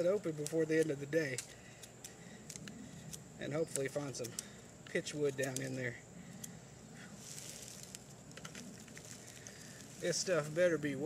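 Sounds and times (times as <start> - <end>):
dry leaves rustling: 7.1 - 11.0.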